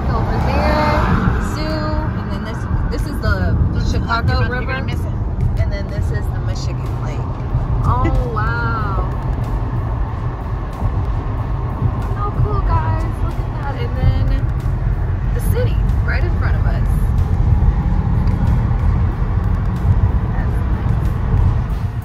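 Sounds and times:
road and engine rumble: 0:00.0 - 0:22.0.

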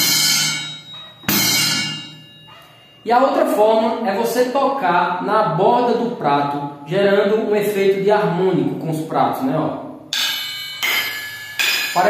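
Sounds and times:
cymbal struck and choked: 0:00.0 - 0:02.9, 0:10.1 - 0:12.0.

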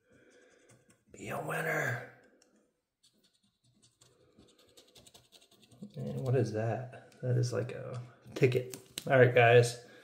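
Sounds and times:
coin scraping scratch card: 0:03.0 - 0:06.4.

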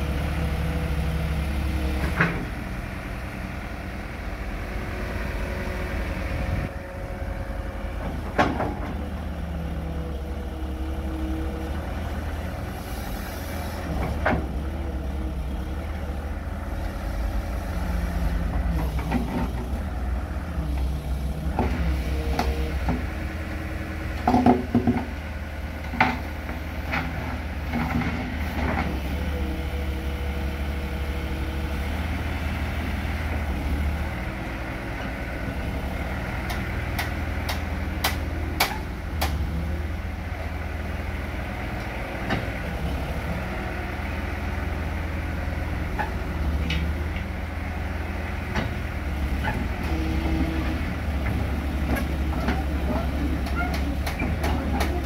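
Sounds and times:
excavator diesel engine running: 0:00.0 - 0:55.0.

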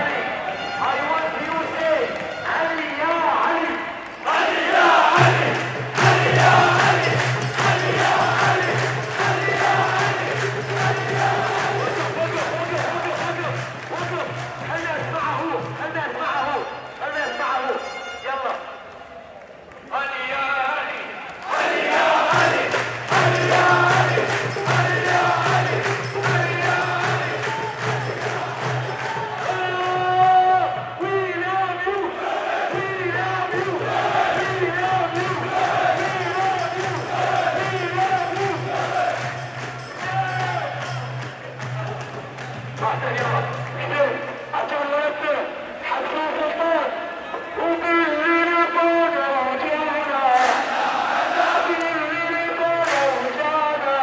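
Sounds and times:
men chanting together: 0:04.2 - 0:13.2, 0:21.4 - 0:29.7, 0:32.0 - 0:40.7, 0:50.3 - 0:52.0
steady drum beat: 0:05.0 - 0:15.7, 0:21.9 - 0:31.0, 0:32.7 - 0:43.0.

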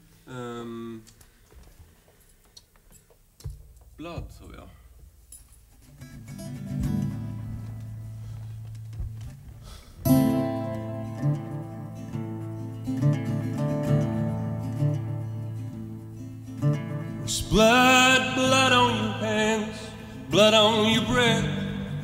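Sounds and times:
acoustic guitar: 0:02.1 - 0:22.0.

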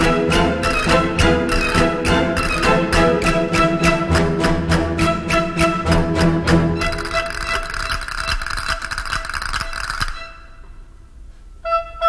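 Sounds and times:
orchestral music: 0:00.0 - 0:10.6.

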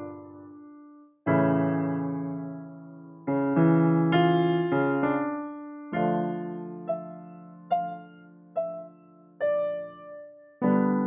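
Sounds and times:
electronic keyboard piano chords: 0:00.0 - 0:11.0.

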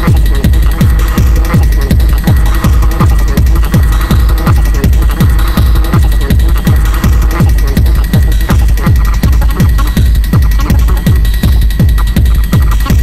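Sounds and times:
deep bass: 0:00.0 - 0:13.0
kick drum with falling pitch: 0:00.0 - 0:13.0.

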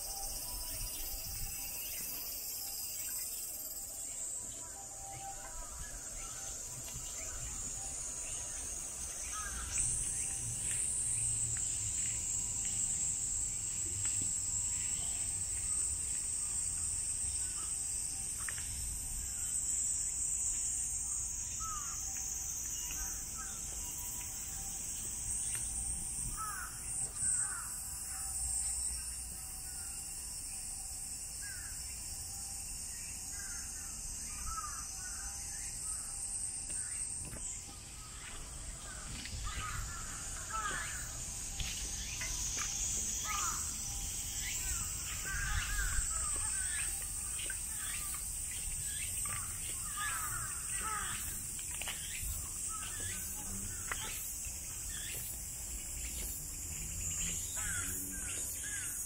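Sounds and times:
cicadas singing: 0:00.0 - 0:59.0.

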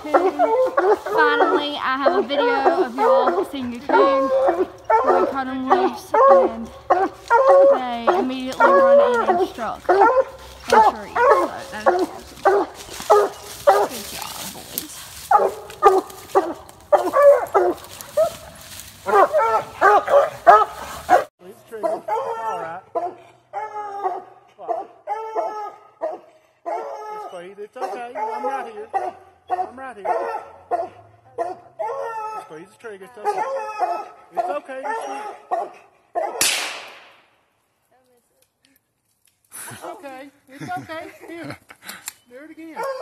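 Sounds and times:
hounds barking: 0:00.0 - 0:36.5, 0:42.7 - 0:43.0.

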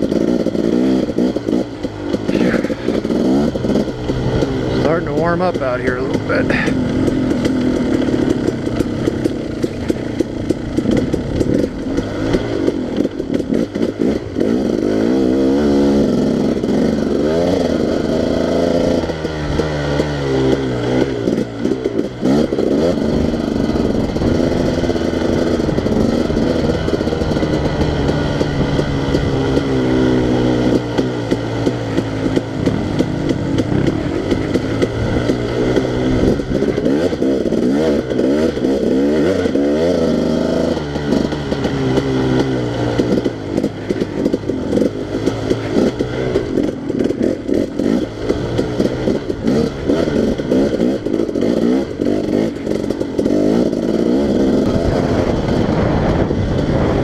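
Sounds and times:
knocks and clatter: 0:00.0 - 0:14.9
dirt bike engine revving: 0:00.0 - 0:57.0.

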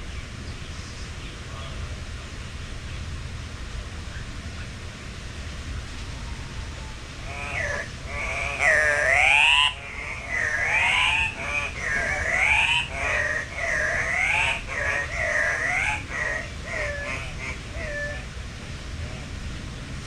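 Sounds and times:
bird calling: 0:06.2 - 0:18.3.

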